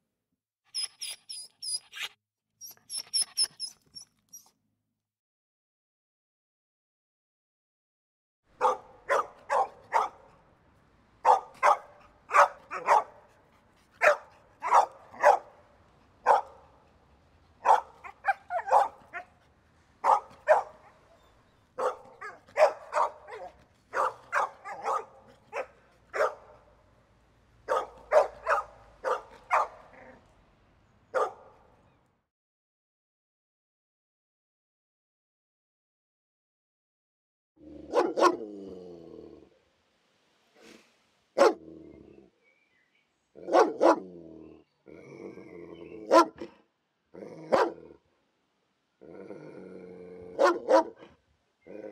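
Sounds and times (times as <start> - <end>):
dog barking: 8.6 - 10.4, 11.2 - 13.4, 14.0 - 15.6, 16.2 - 16.7, 17.6 - 19.3, 20.0 - 26.7, 27.6 - 30.2, 31.1 - 31.6, 37.8 - 38.5, 41.4 - 41.6, 43.4 - 44.1, 46.0 - 46.6, 47.5 - 48.0, 50.4 - 51.2.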